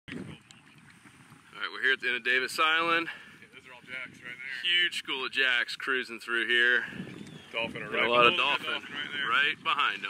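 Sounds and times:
faint outdoor wind: 0:00.1 - 0:10.0
wind buffeting microphone: 0:00.1 - 0:10.0
man talking: 0:01.6 - 0:06.9, 0:07.6 - 0:10.0.

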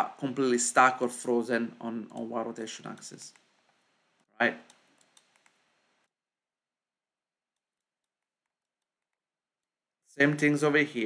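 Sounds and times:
computer mouse clicks: 0:02.0 - 0:02.3, 0:04.6 - 0:05.6.

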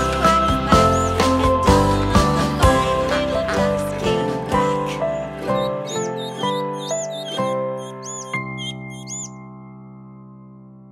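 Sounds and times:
high cartoon duckling peeps: 0:05.5 - 0:09.4.

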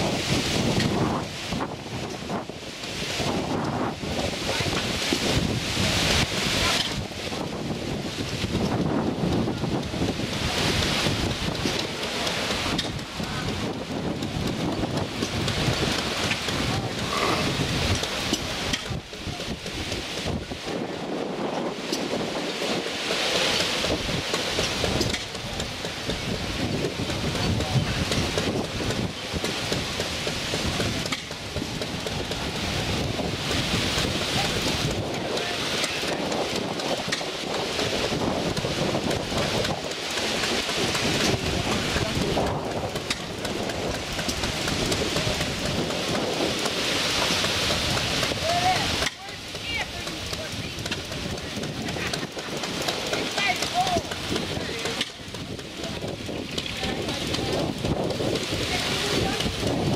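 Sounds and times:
wind buffeting microphone: 0:00.0 - 0:59.9
faint voices: 0:09.4 - 0:22.0, 0:24.5 - 0:46.7, 0:47.7 - 0:59.9.

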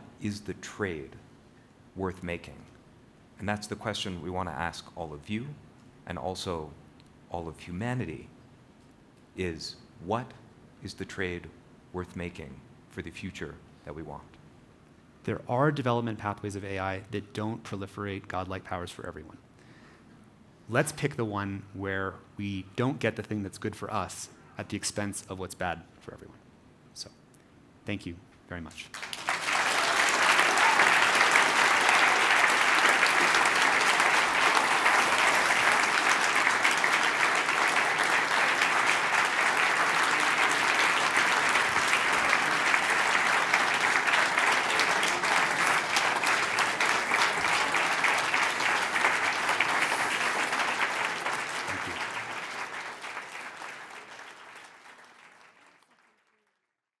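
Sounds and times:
audience applauding: 0:28.9 - 0:56.7.

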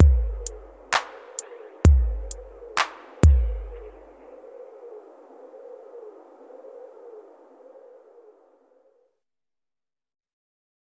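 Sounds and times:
wavering mid-pitched hum: 0:00.0 - 0:09.2.

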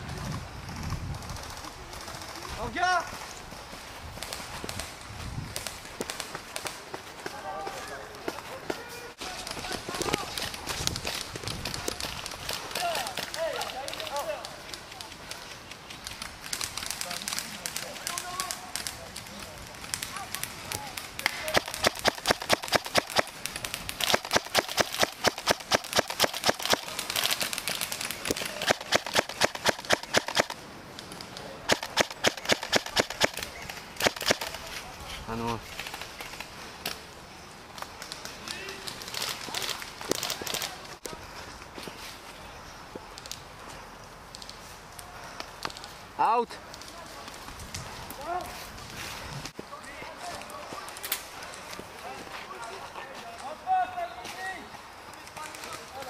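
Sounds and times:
airsoft rifle rapid bursts: 0:21.5 - 0:23.3, 0:24.0 - 0:26.9, 0:28.3 - 0:30.6, 0:31.7 - 0:33.4, 0:34.0 - 0:34.5.

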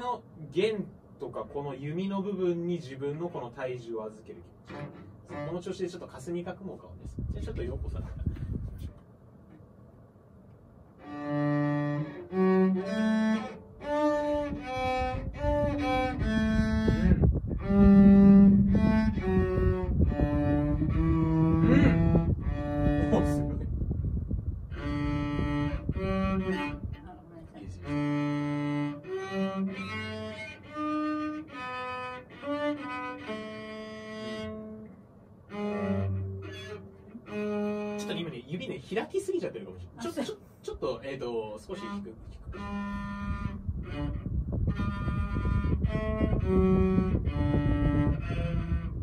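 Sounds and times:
bowed cello notes: 0:04.2 - 0:06.3, 0:11.0 - 0:23.7, 0:24.7 - 0:38.6, 0:41.6 - 0:49.0.

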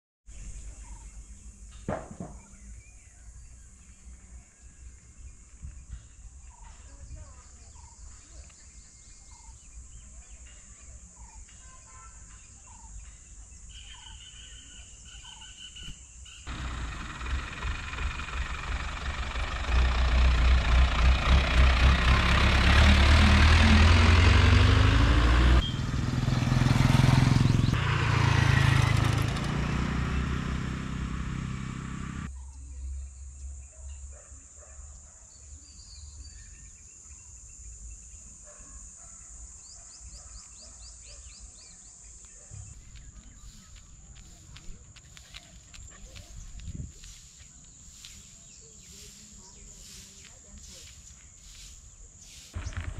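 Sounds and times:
faint birds chirping: 0:00.3 - 0:52.9
vehicle engine speeding up: 0:16.5 - 0:32.3.

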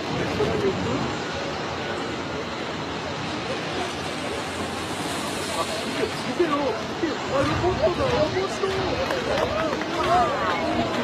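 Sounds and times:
faint voices: 0:00.0 - 0:11.0
jet engines rushing: 0:00.0 - 0:11.0.

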